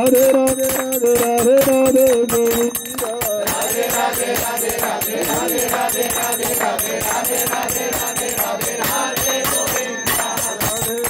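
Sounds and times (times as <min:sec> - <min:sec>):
hand cymbals ringing: 0:00.0 - 0:11.0.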